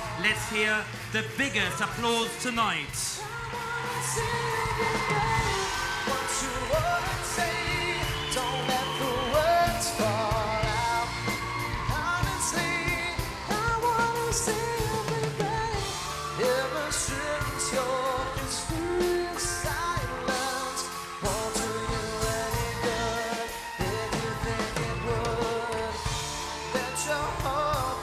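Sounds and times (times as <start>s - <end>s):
live pop band playing: 0.0s - 28.0s
steady drum beat: 0.0s - 28.0s.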